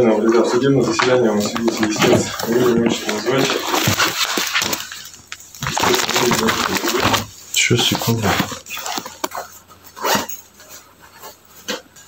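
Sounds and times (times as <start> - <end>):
person talking in a room: 0.0 - 9.2.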